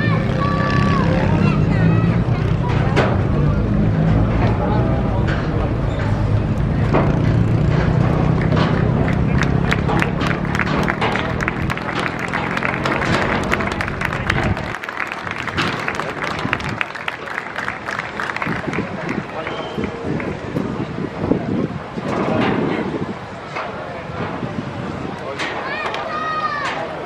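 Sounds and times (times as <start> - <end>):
voices: 0.0 - 27.0
crowd applauding: 7.4 - 20.6.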